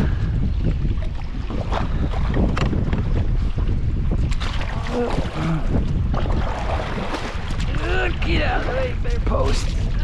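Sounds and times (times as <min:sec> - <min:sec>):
water splashing against kayak: 0:00.0 - 0:10.0
wind buffeting microphone: 0:00.0 - 0:10.0.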